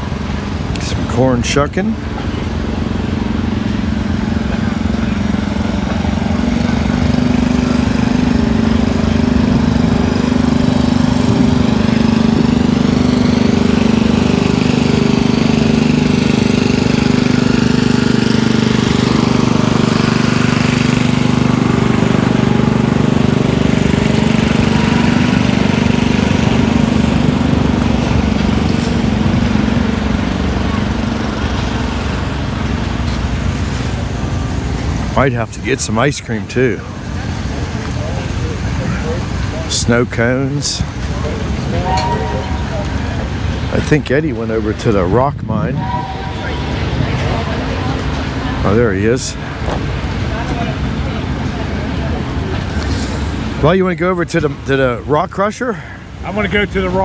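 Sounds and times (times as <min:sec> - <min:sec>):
engine running steadily: 0:00.0 - 0:57.0.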